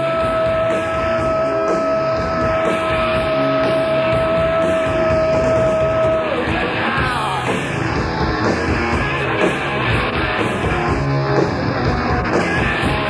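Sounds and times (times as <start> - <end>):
noise punk band playing: 0.0 - 13.0.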